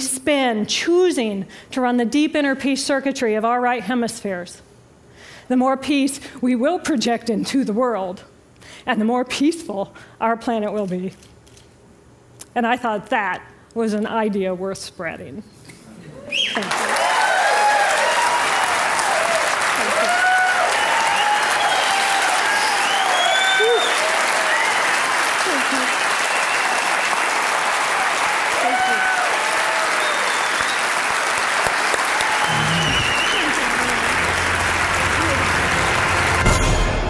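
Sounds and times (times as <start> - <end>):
whoops and cheers: 16.3 - 27.3, 27.9 - 30.8, 32.0 - 34.4
audience applauding: 16.3 - 37.0.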